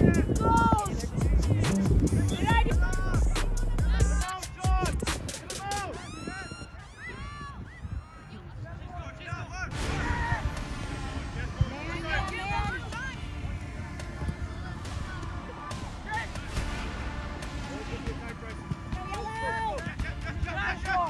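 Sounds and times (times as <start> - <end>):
people shouting on a pitch: 0.0 - 1.1, 3.9 - 21.0.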